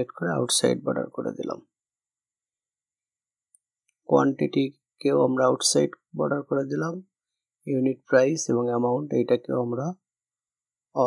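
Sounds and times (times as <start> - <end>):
man speaking: 0.0 - 1.7, 4.0 - 10.1.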